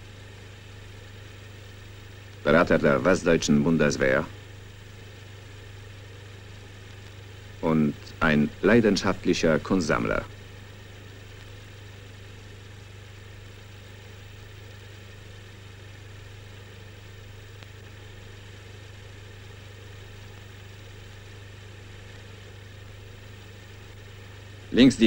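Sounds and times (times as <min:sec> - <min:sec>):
film projector humming: 0:00.0 - 0:25.0.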